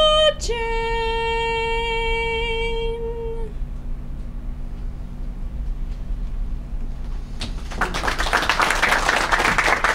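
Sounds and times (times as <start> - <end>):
audience applauding: 7.6 - 9.9.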